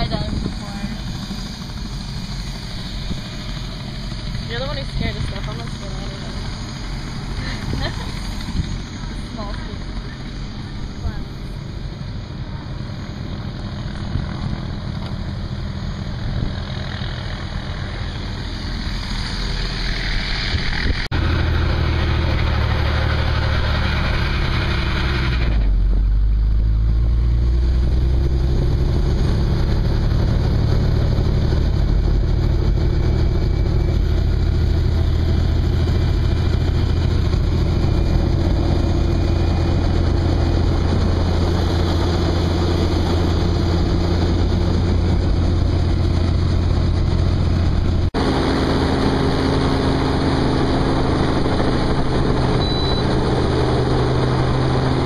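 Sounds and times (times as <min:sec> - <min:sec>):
helicopter engine and rotor: 0:00.0 - 0:55.0.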